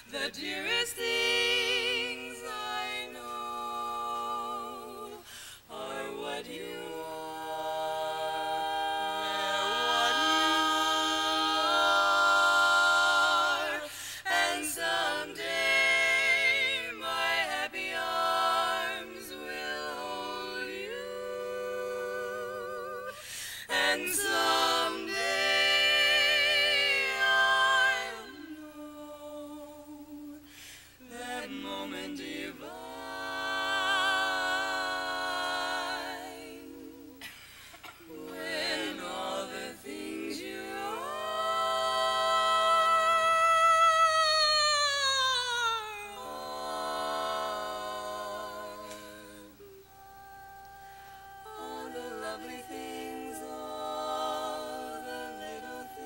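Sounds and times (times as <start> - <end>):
women singing a cappella harmony: 0.0 - 56.0.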